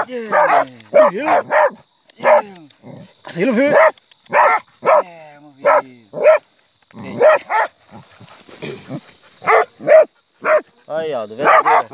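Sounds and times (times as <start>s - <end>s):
dogs barking: 0.0s - 2.5s, 3.6s - 6.4s, 7.0s - 8.2s, 9.3s - 10.7s, 11.4s - 11.9s.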